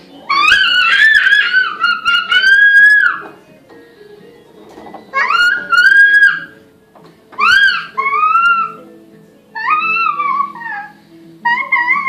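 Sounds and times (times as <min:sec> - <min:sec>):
toddler squealing: 0:00.3 - 0:03.3, 0:05.1 - 0:06.6, 0:07.4 - 0:08.8, 0:09.6 - 0:12.0.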